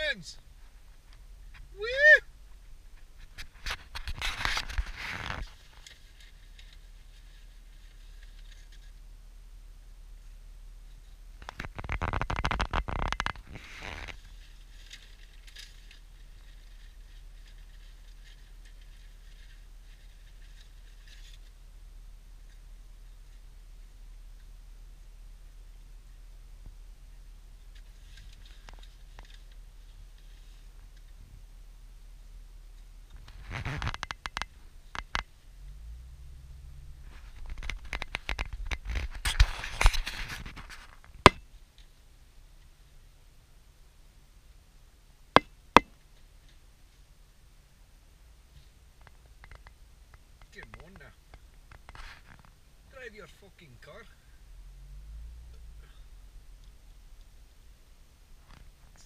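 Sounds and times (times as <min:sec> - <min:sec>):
faint low car rumble: 0:00.0 - 0:59.0
scraping and rattling clicks: 0:33.1 - 0:35.3, 0:37.1 - 0:41.2.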